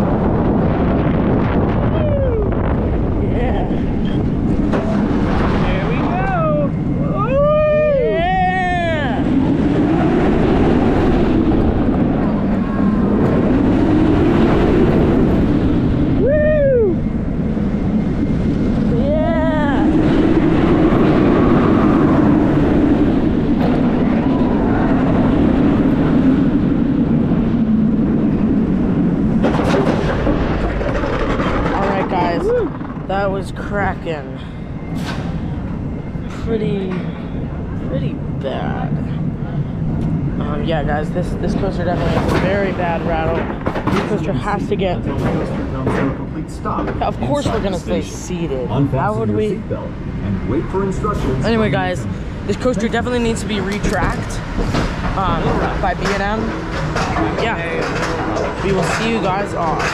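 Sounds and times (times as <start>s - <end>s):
roller coaster rumbling: 0.0s - 59.9s
wind rushing over microphone: 0.0s - 59.9s.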